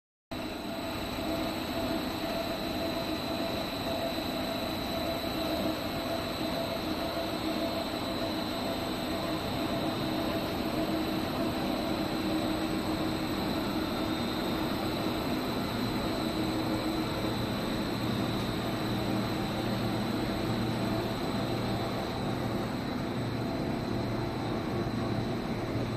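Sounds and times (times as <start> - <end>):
machinery hum and whir: 0.3 - 25.9
high-pitched whine: 0.4 - 25.9.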